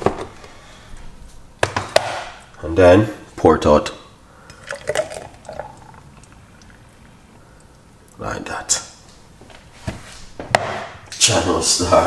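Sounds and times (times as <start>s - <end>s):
faint liquid pouring: 4.4s - 7.8s
thick smoothie glugging and splashing: 4.4s - 7.8s.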